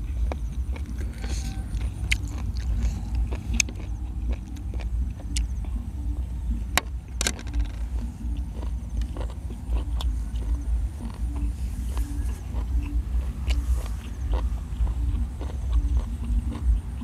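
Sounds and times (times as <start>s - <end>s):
chewing and crunching food: 0.0s - 17.0s
steady low rumble: 0.0s - 17.0s.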